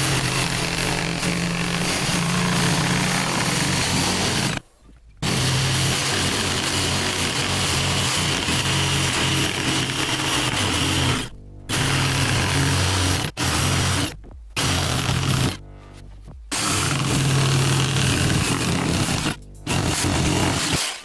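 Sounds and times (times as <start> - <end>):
jigsaw cutting wood: 0.0 - 4.6, 5.2 - 15.6, 16.5 - 21.0.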